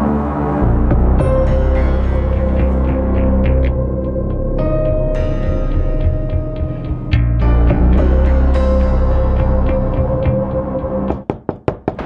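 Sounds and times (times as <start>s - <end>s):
background music with low chord: 0.0s - 11.3s
knocking on wooden door: 11.1s - 12.0s.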